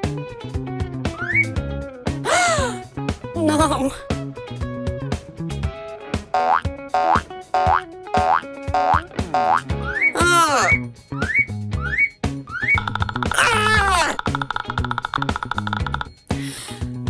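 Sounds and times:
cartoon music with bass beat: 0.5s - 17.0s.

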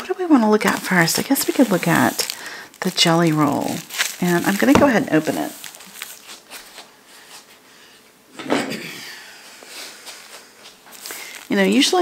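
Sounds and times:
quiet handling and rummaging: 0.3s - 7.6s, 10.0s - 12.0s
drawer sliding or knock: 4.8s - 5.1s.

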